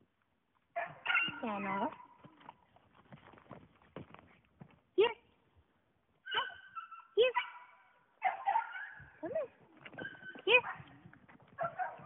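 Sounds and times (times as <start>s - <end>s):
puppy yipping: 0.8s - 1.4s, 6.2s - 10.9s, 11.6s - 12.0s.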